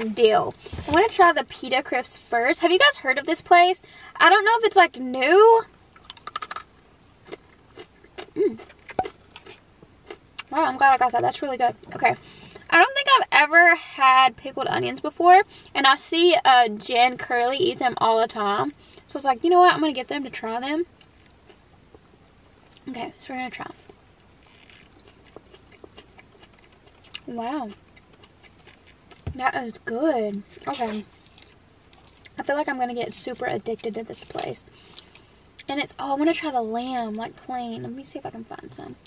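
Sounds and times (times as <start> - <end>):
crisps crunching while chewed: 6.0 - 10.6, 23.7 - 29.4, 30.4 - 32.4.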